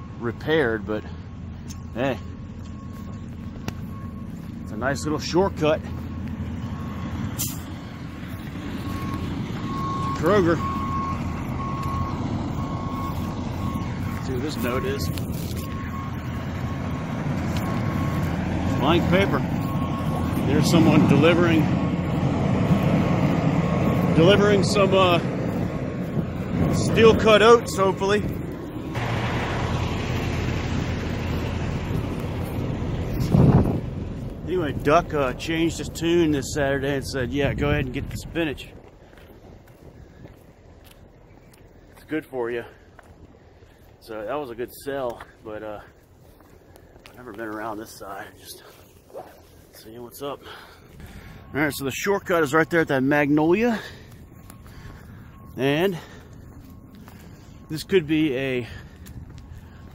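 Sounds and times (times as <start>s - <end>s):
low engine rumble: 0.0s - 59.9s
truck reverse warning beeper: 0.0s - 59.9s
wind on microphone: 33.1s - 34.1s.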